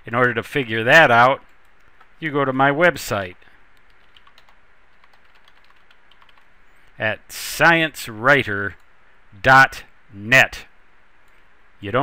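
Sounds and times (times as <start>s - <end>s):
keyboard typing: 3.7s - 6.8s.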